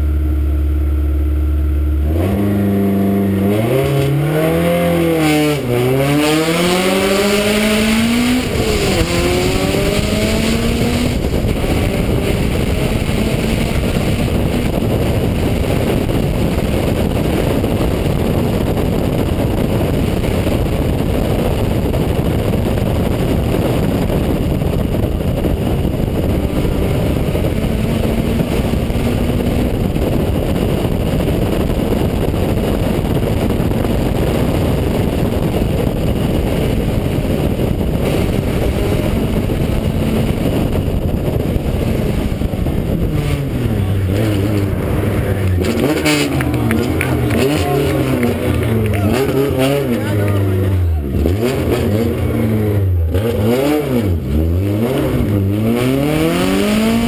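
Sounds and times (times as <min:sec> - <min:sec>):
car engine accelerating hard: 0:00.0 - 0:57.0
wind and road noise: 0:00.0 - 0:57.0
gear upshifts: 0:36.4 - 0:57.0.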